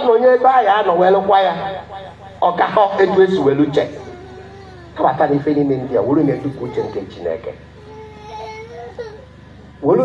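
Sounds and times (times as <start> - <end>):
man speaking over loudspeaker: 0.0 - 4.2, 5.0 - 7.7
high-pitched crying voice: 2.8 - 9.4.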